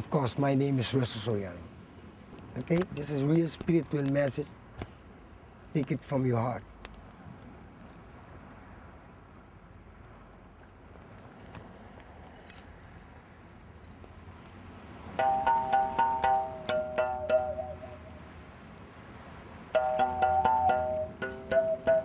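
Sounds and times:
mouth bow twanging tune: 0:15.2 - 0:18.3, 0:19.8 - 0:22.0.

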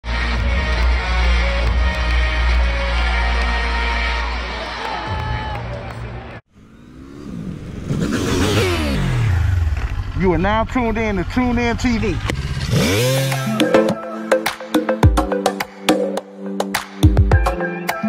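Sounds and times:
music playing: 0:00.0 - 0:06.4, 0:12.8 - 0:18.0
arena crowd noise: 0:00.0 - 0:06.5.

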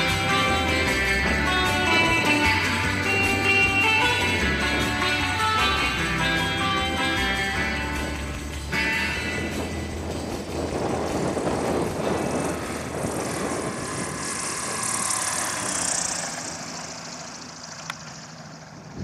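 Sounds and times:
acoustic guitar music: 0:00.0 - 0:13.0
propeller aircraft engine: 0:00.0 - 0:19.0.

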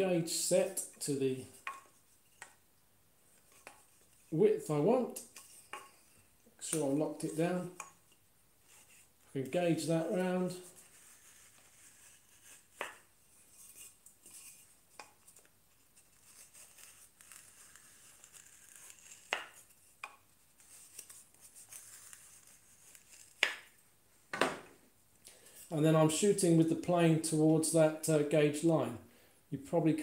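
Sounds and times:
sharp knocks of board handling: 0:24.3 - 0:24.8.

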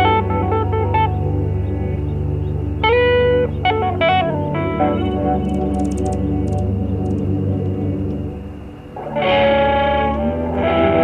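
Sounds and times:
held layered music chords: 0:00.0 - 0:11.0.

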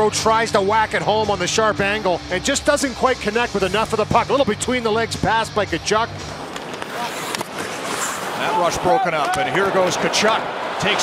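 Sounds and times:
skates scraping ice: 0:06.2 - 0:10.6.

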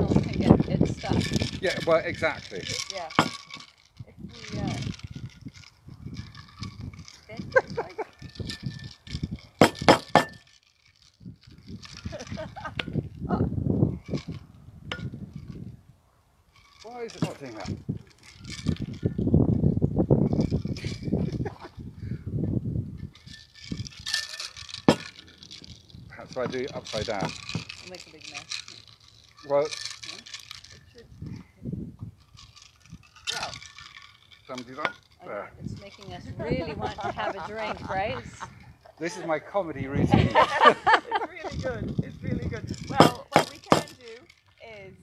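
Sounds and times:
voices: 0:00.0 - 0:03.3, 0:26.2 - 0:28.6, 0:34.5 - 0:45.0
metal cocktail shaker clinking: 0:00.0 - 0:13.0, 0:16.6 - 0:19.1, 0:23.0 - 0:31.2, 0:32.2 - 0:44.6.

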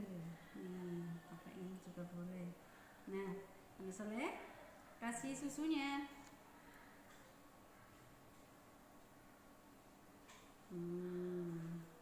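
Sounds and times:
woman humming: 0:00.0 - 0:01.8, 0:10.7 - 0:12.0.

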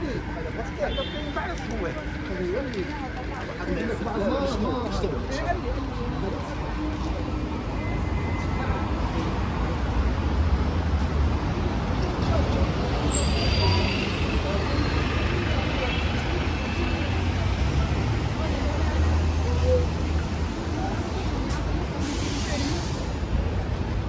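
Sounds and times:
busy road traffic: 0:00.0 - 0:24.0.

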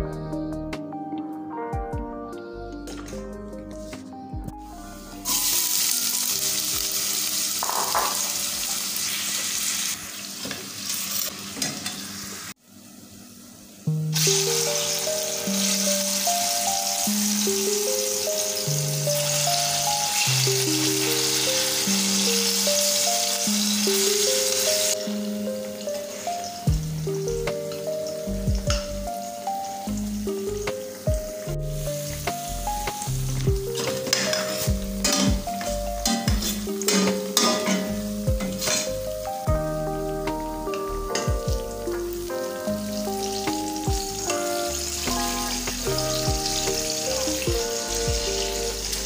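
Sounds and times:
background music: 0:00.0 - 0:09.2, 0:13.9 - 0:49.0
plantain sizzling in oil: 0:05.2 - 0:13.0, 0:14.0 - 0:39.5, 0:40.3 - 0:49.0.

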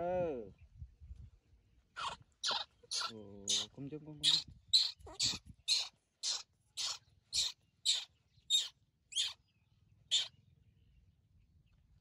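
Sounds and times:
baby monkey squealing: 0:02.0 - 0:09.4, 0:10.1 - 0:10.3.

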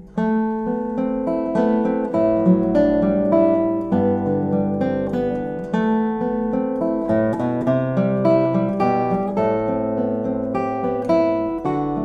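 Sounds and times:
classical guitar fingerstyle: 0:00.0 - 0:12.0.

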